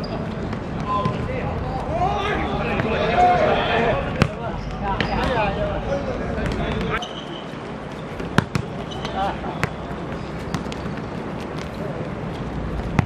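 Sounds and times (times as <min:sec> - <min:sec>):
players calling out: 0:00.0 - 0:07.6
football thuds on hard court: 0:08.3 - 0:08.7.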